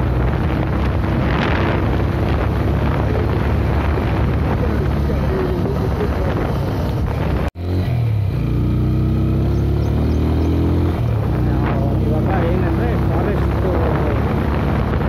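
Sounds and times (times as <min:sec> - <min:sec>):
wind noise on microphone: 0:00.0 - 0:07.6, 0:09.1 - 0:15.0
motorcycle engine running: 0:00.0 - 0:15.0.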